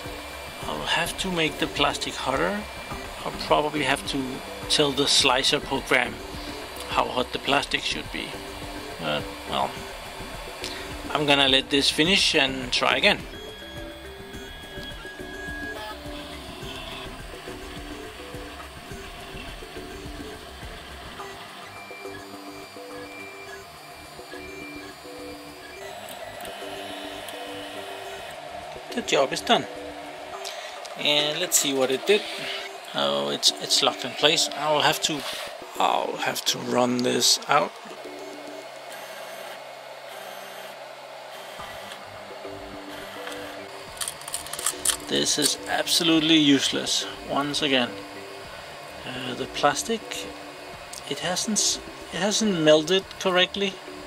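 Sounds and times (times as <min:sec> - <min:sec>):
stepper motors whining: 0:00.0 - 0:54.0.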